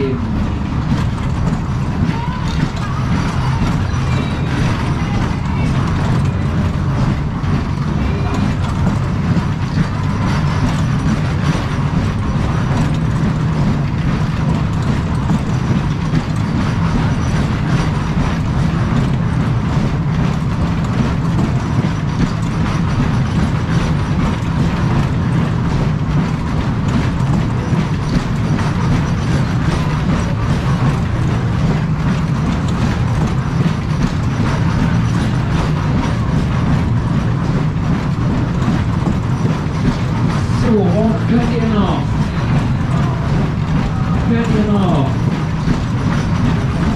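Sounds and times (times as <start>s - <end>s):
roundabout ride rumbling and clattering: 0.0s - 46.9s.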